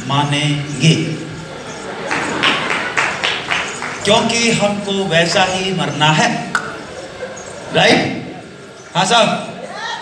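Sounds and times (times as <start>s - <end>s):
hand clapping in steady rhythm: 2.0s - 4.3s, 6.5s - 6.8s.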